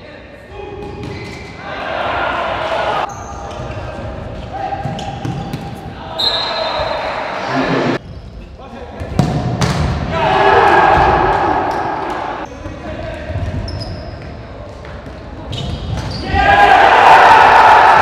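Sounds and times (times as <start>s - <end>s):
players shouting: 1.6s - 3.1s, 10.0s - 12.5s, 16.1s - 18.0s
crowd cheering: 10.1s - 12.5s, 16.2s - 18.0s.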